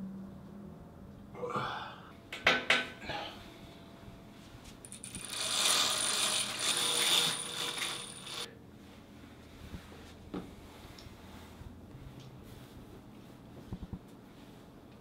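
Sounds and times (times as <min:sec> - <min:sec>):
blind bead chain rattling: 0:04.8 - 0:08.5.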